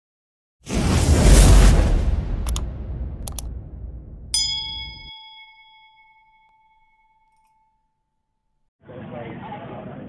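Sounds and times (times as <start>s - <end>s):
low rumble: 0.8s - 5.1s.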